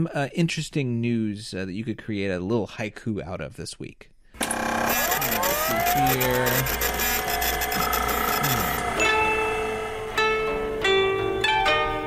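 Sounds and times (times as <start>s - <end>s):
machine whine rising in pitch: 4.4s - 11.6s.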